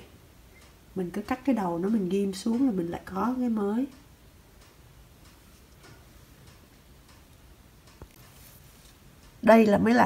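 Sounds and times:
soft irregular ticks: 0.5 - 10.0.

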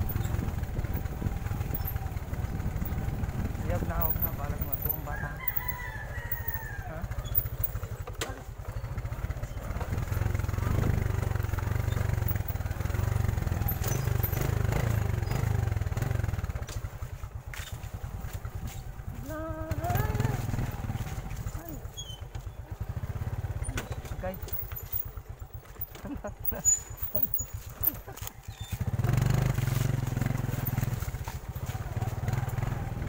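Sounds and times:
rooster crowing: 5.0 - 7.6.

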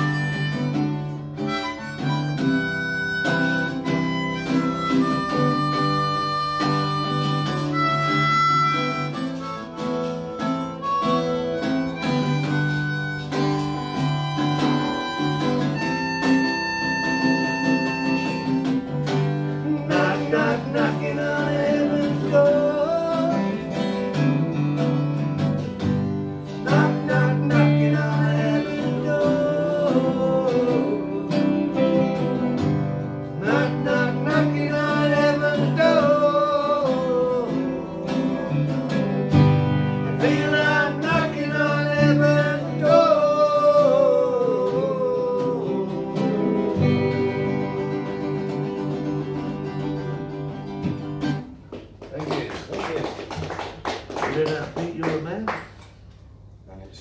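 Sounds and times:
harmonica held notes: 0.0 - 23.8
acoustic guitars strumming: 0.0 - 52.2
man singing: 19.5 - 24.2, 26.6 - 32.2, 33.4 - 38.8, 40.0 - 49.5.

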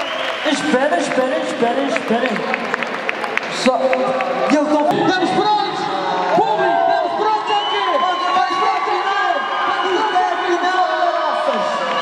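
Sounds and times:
crowd voices and shouts: 0.0 - 12.0
man speaking over pa system: 3.6 - 12.0.

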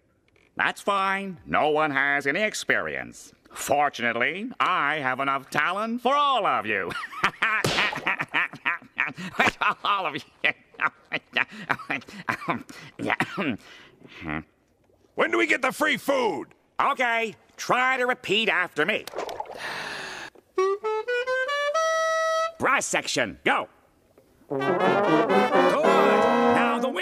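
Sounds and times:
cartoon character laughing: 6.9 - 13.2
breathy gasp: 13.6 - 14.3, 19.6 - 20.4
wind instrument rising notes: 20.6 - 22.6, 24.5 - 27.0.

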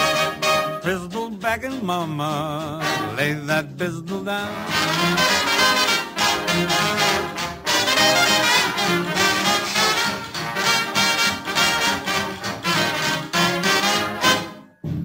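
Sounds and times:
swing band brass section: 0.0 - 1.2, 2.5 - 3.6, 4.4 - 14.8
steady rhythmic beat: 0.0 - 3.1, 4.1 - 15.0.

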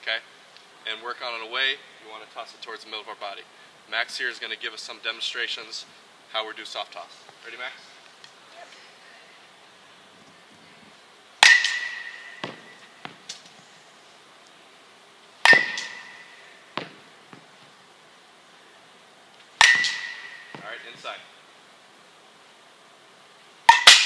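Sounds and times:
metal bat hitting baseball: 11.4 - 12.9, 15.4 - 17.0, 19.6 - 20.7, 23.7 - 24.0
ball landing knocks: 11.4 - 13.4, 15.4 - 17.5, 19.6 - 21.1.

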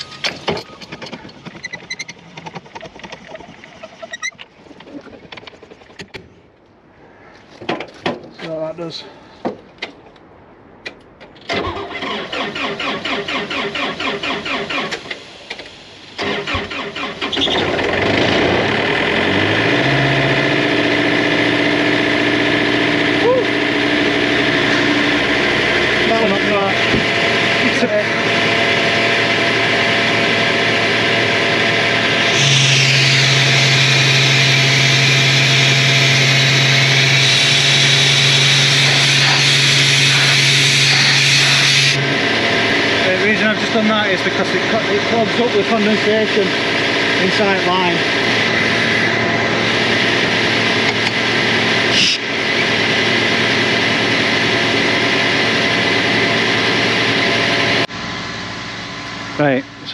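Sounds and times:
diesel engine cranking: 0.0 - 6.6, 10.8 - 59.9
diesel engine idling: 11.8 - 59.9
loud air hiss: 32.3 - 34.3, 35.9 - 42.0.

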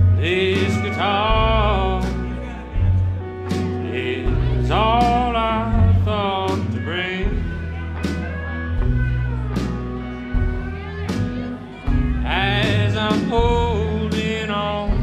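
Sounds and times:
country band playing: 0.0 - 15.0
pedal steel guitar: 0.0 - 15.0.

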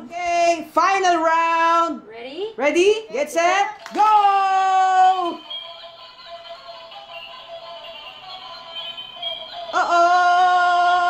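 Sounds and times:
toy spinning tops on tile floor: 3.8 - 10.6
tinny electronic tunes: 3.8 - 11.0
person shouting: 9.8 - 11.0.

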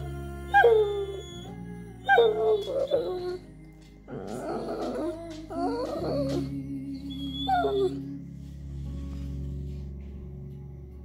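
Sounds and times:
background music with held notes: 0.0 - 11.0
dog whining: 0.5 - 3.4, 4.1 - 8.1.

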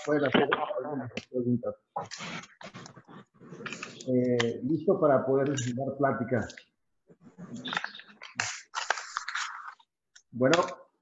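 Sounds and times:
scratchy rustling: 2.0 - 4.6, 7.1 - 9.9.

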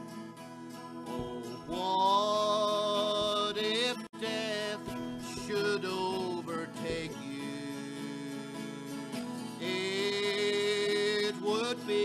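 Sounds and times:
acoustic guitar: 0.0 - 12.0
man singing: 1.1 - 12.0.

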